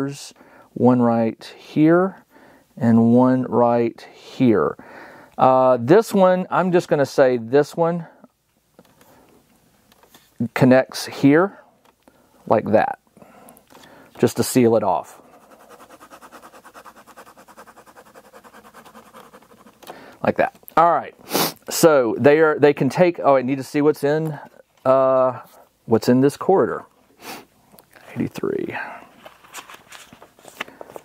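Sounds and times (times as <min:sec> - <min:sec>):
pen scratching on paper: 0:15.2 - 0:19.9
book pages flipping: 0:15.6 - 0:20.7, 0:29.2 - 0:31.0.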